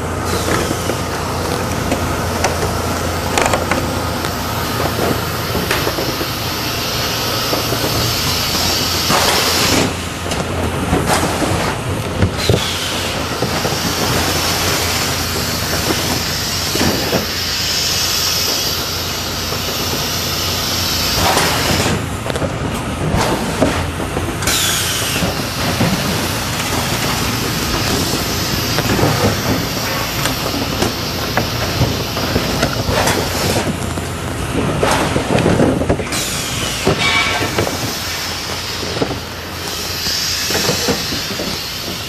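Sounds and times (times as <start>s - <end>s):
machinery rattle: 0.0s - 42.0s
air hiss: 2.8s - 10.2s, 12.3s - 22.2s, 23.4s - 33.8s, 36.0s - 42.0s.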